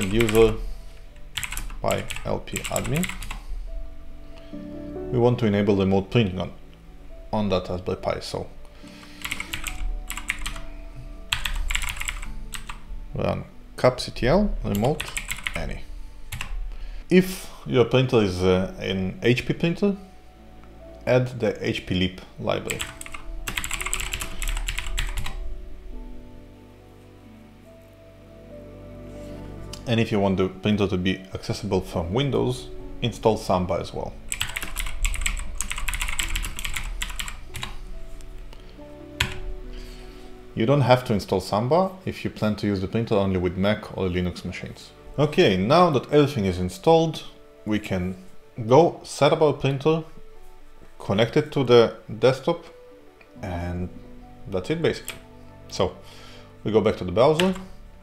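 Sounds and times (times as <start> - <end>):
typing on a computer keyboard: 0.0 - 0.6, 1.3 - 3.4, 9.2 - 10.7, 11.3 - 12.8, 14.7 - 15.6, 16.3 - 16.6, 22.7 - 25.4, 34.3 - 37.8, 39.2 - 39.4
quiet background music: 0.0 - 58.0.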